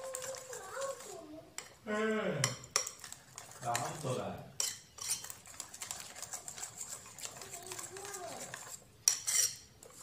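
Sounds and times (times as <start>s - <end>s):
batter clinking against ceramic bowl: 2.4s - 10.0s.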